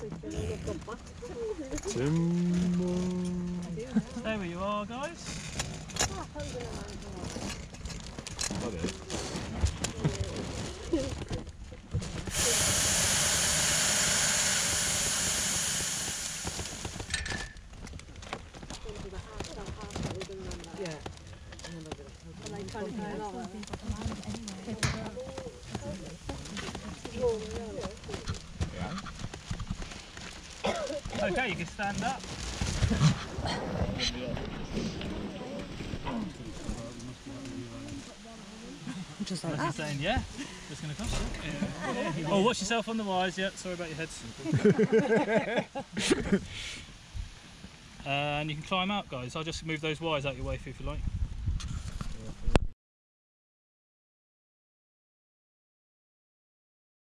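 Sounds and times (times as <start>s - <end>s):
propane burner hissing: 12.2s - 17.6s, 46.0s - 47.0s
rustling in basket: 17.8s - 38.2s.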